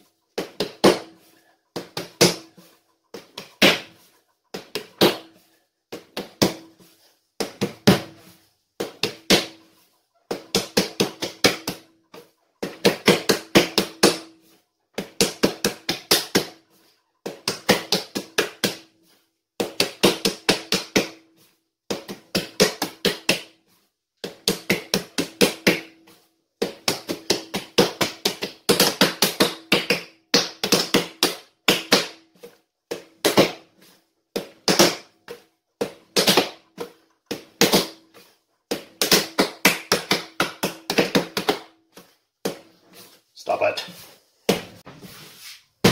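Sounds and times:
hands kneading and slapping dough: 0.3 - 45.9.

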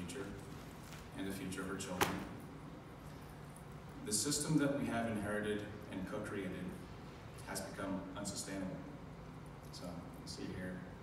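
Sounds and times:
low hum of room tone: 0.0 - 11.0.

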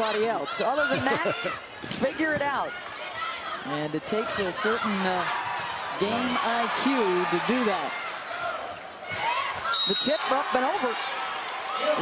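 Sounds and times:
crowd noise: 0.0 - 12.0
sneaker squeaks: 2.3 - 4.4.

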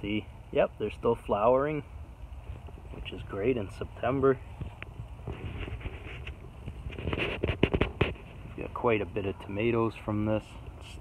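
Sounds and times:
plant leaves rustling and crackling: 2.4 - 11.0.

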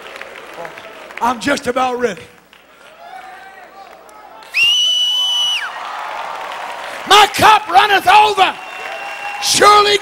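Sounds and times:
crowd cheering and shouting: 2.9 - 10.0
shrill whistle with falling slide: 4.5 - 5.7.

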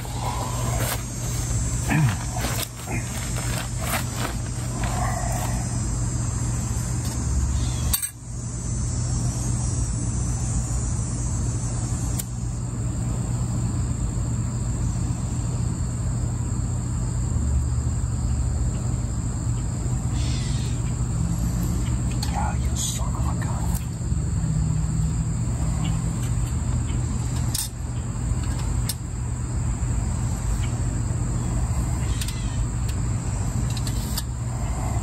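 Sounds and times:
constant low rumble: 0.0 - 35.0
high-pitched insect drone: 0.0 - 35.0.

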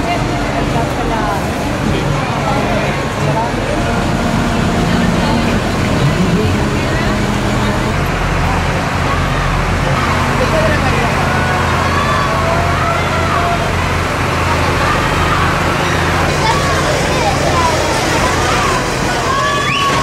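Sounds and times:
crowd voices: 0.0 - 20.0
people calling and shouting: 0.0 - 20.0
tractor engine hum: 0.0 - 20.0.

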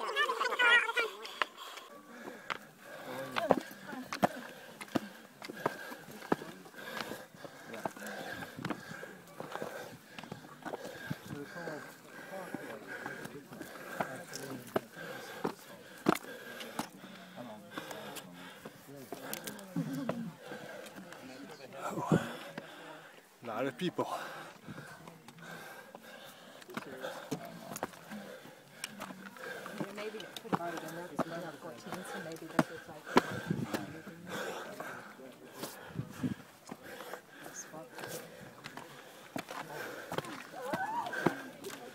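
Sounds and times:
people talking: 0.0 - 22.8, 26.7 - 41.9
scuffing on stone steps: 2.4 - 21.2, 24.5 - 41.9.

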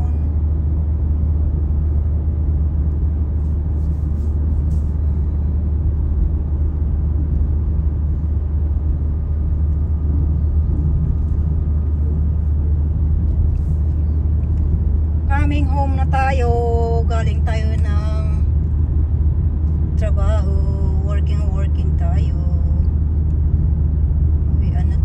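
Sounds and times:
car engine and tyre noise: 0.0 - 25.0.

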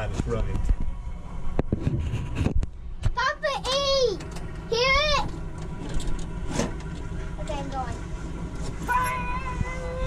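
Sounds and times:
low engine rumble: 0.0 - 10.0
child crying out: 8.9 - 10.0.

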